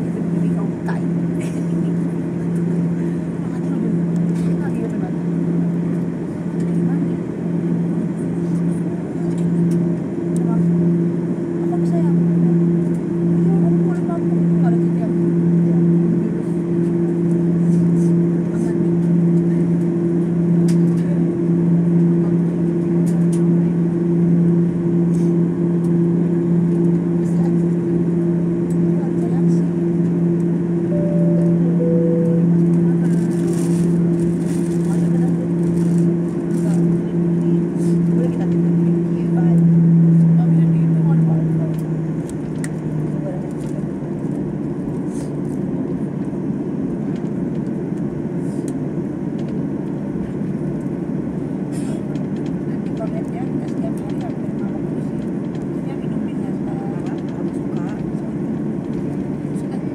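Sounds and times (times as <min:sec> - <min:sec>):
jet engines droning: 0:00.0 - 0:59.9
higher engine tone: 0:13.3 - 0:42.3
constant cabin rush: 0:25.7 - 0:44.4, 0:51.4 - 0:59.9.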